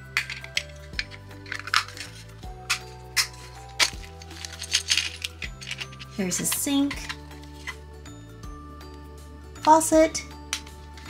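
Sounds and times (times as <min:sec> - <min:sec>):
light background music: 0:00.0 - 0:11.0
plastic pieces clicking: 0:00.1 - 0:07.8.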